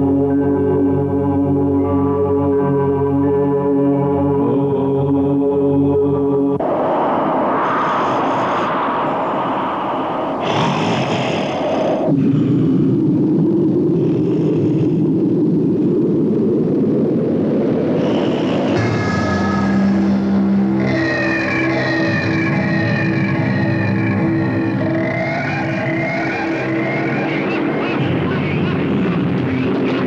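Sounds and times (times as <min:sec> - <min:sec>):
dense low swell: 0:00.0 - 0:30.0.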